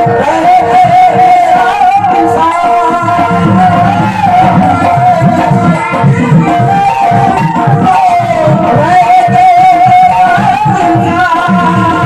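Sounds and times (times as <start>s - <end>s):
hand drum rhythm: 0.0s - 12.0s
man singing a long note: 0.0s - 12.0s.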